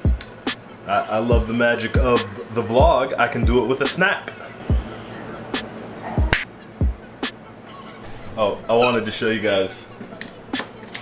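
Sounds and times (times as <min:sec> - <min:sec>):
music with deep kick drum: 0:00.0 - 0:00.6, 0:01.3 - 0:03.7, 0:04.7 - 0:05.0, 0:06.2 - 0:07.4
finger snaps: 0:00.2 - 0:00.4.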